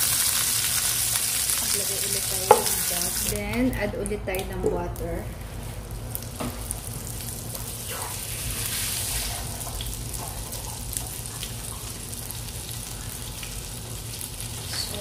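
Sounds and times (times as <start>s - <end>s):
butter sizzling in frying pan: 0.0s - 3.5s, 6.0s - 15.0s.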